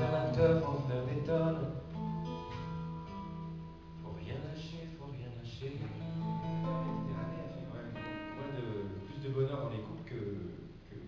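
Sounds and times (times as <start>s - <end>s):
acoustic guitars playing: 0.0s - 10.9s.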